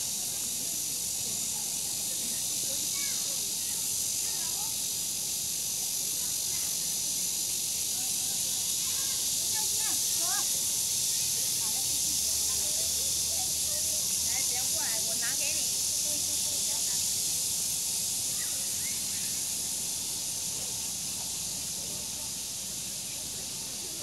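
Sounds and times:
cicada chorus drone: 0.0 - 24.0.

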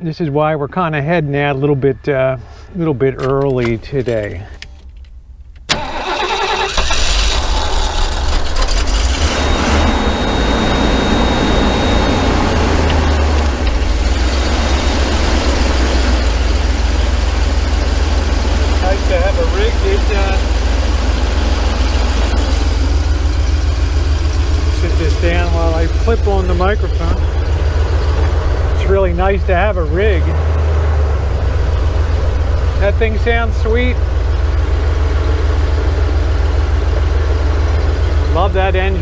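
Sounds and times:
van engine starting and running: 0.1 - 39.0.

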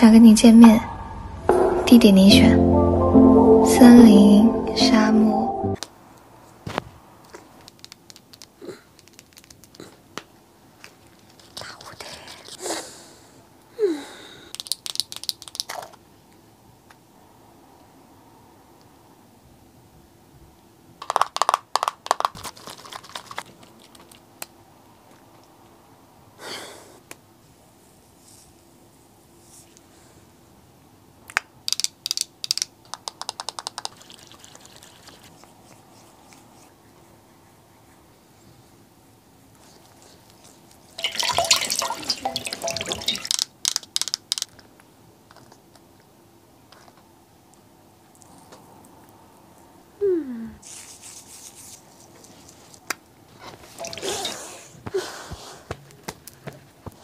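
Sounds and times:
water splashing and dripping: 41.0 - 43.4, 53.8 - 54.1.

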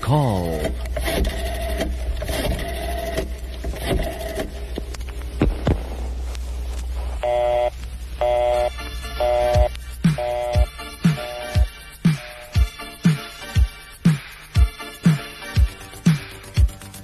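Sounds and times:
telephone line hum with crackle: 0.0 - 12.6
pulsing buzzy tone: 7.1 - 12.8.

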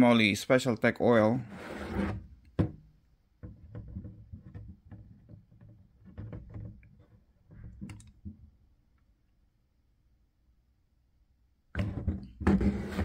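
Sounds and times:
plastic jug knocks and clicks: 2.5 - 8.4.

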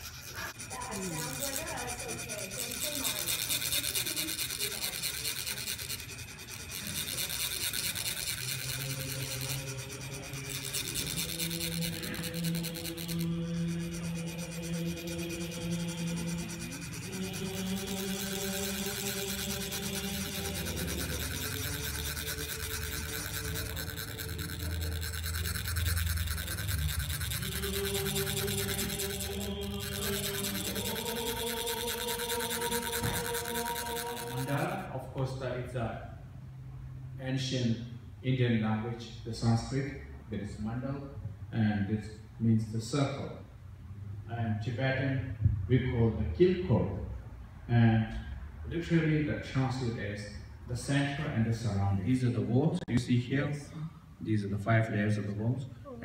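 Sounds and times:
metal rod rasping on sand funnel: 0.0 - 34.8
low held tones: 0.0 - 35.8.

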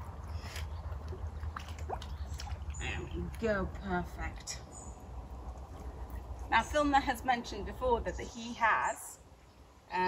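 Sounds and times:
sharp splashes: 0.0 - 3.6
water sloshing and squelching: 0.0 - 4.2.

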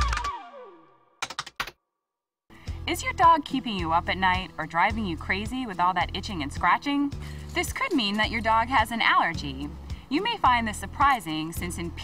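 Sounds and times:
keyboard typing clicks: 1.2 - 1.8
background music: 2.5 - 12.0.

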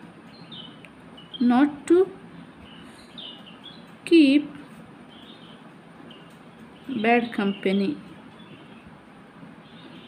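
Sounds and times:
steady low hiss: 0.0 - 10.0
small bird chirps: 0.2 - 9.0, 9.6 - 10.0.

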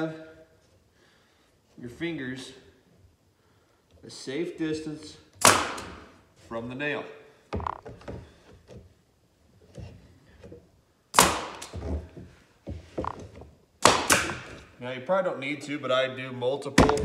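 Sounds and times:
nail gun firing: 5.4 - 6.1, 11.2 - 11.8, 13.8 - 14.6
tool knocking against wood: 7.6 - 8.2, 11.8 - 13.3.

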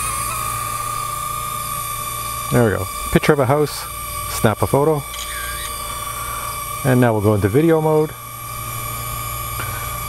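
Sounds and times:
toy drone propellers whining: 0.0 - 10.0.

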